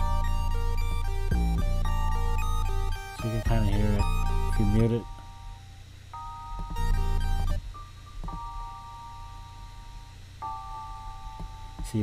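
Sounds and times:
deep bass: 0.0 - 4.9
bright chiptune lead: 0.0 - 5.6, 6.5 - 7.6
piano and electric piano chords: 0.0 - 12.0.

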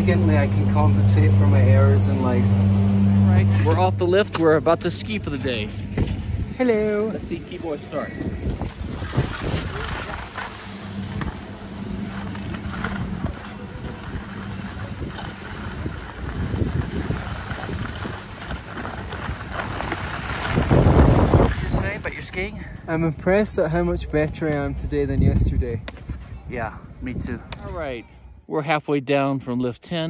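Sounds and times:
skis scraping over snow: 0.0 - 2.4, 3.3 - 25.6
wind rushing over microphone: 5.1 - 28.4.

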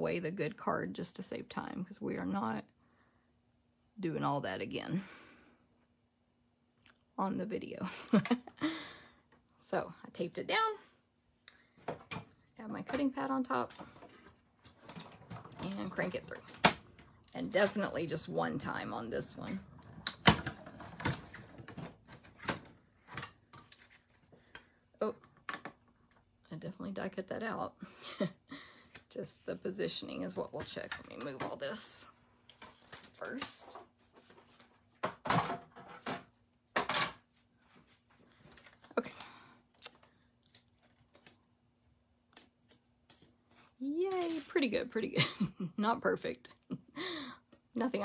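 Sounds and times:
paper and plastic rustling: 20.6 - 24.5.

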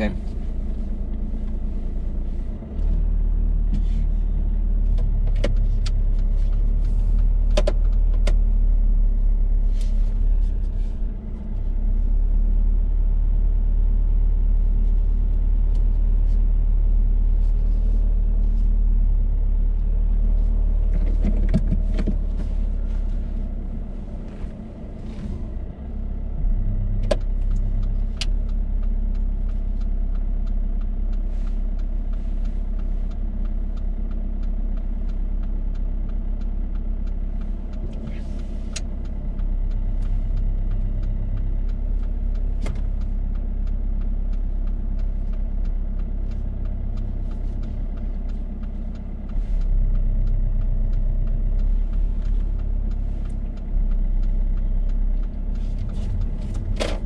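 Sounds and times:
car engine rumbling: 0.0 - 57.0.

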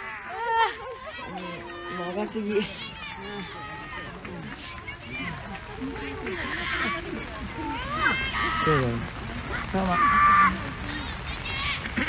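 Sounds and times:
overlapping spectator voices: 0.0 - 12.0.

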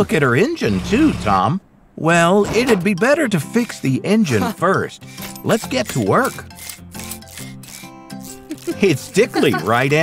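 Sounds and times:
background music with held chords: 3.4 - 10.0
wrench scraping in engine: 5.0 - 9.9.

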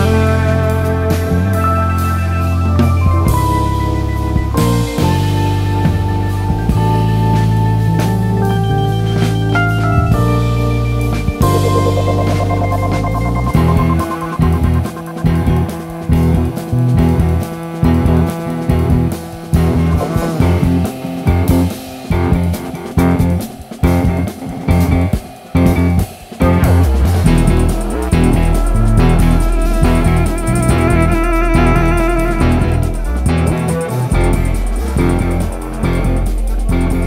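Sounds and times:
bass line: 0.0 - 37.0
jazz band playing: 0.0 - 37.0.

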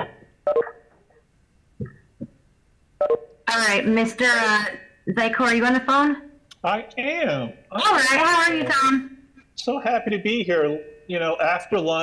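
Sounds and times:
voice over video call: 3.5 - 12.0.

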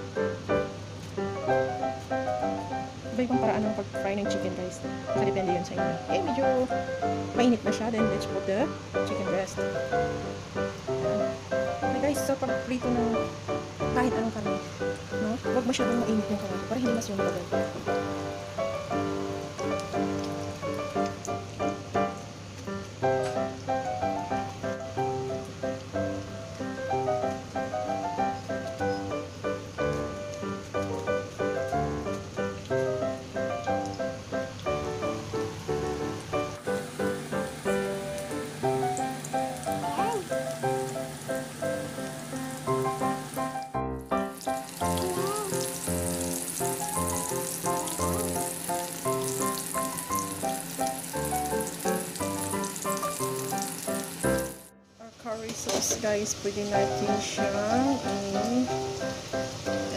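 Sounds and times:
background music: 0.0 - 21.0, 23.0 - 54.7
chicken frying in hot oil: 0.0 - 59.9.

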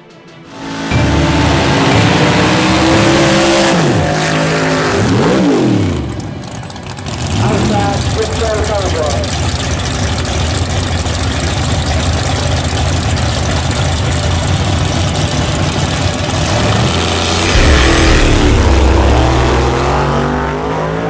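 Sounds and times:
drag car engines rumbling: 0.2 - 21.0
engine revving: 0.5 - 21.0.

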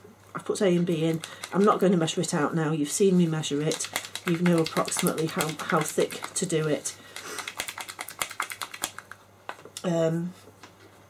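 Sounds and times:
stir stick clicking in plastic cup: 1.1 - 1.8, 3.6 - 9.2.

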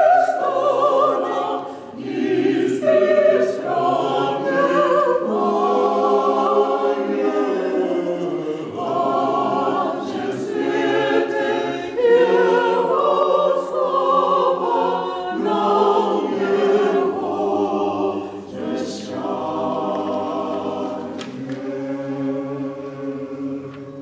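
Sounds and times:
church choir singing a hymn: 0.0 - 24.0.

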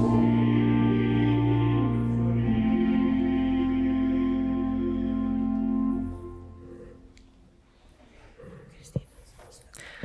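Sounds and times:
faint whispered speech: 8.0 - 9.8.

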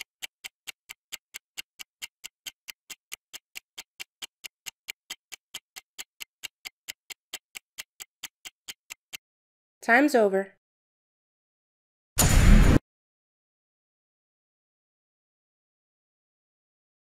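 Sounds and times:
clock-like ticks: 0.0 - 9.2.

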